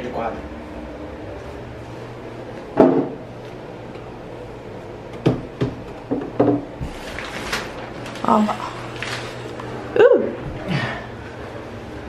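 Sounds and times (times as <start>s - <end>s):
picture frame knocking on wall: 2.8s - 3.2s, 5.2s - 6.6s.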